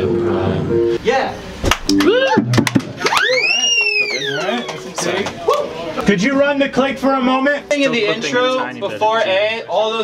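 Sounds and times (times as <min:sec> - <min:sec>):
people talking and laughing: 0:01.9 - 0:10.0
swooping high whistle: 0:03.0 - 0:04.4.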